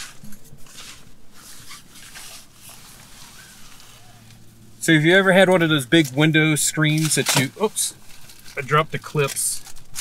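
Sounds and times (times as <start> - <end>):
faint fabric rustling: 0.0 - 4.7.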